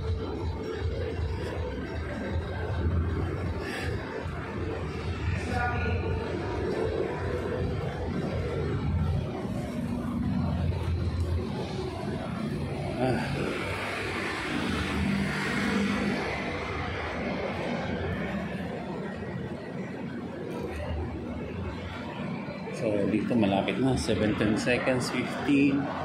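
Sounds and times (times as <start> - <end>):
steady low rumble: 0.0 - 15.3
vehicle engines passing: 0.0 - 26.0.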